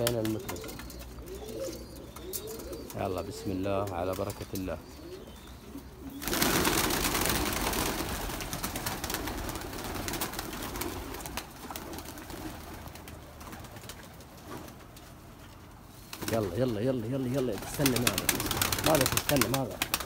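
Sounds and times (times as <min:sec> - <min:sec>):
pigeons wings flapping: 0:00.0 - 0:01.2, 0:06.2 - 0:15.2, 0:16.0 - 0:20.0.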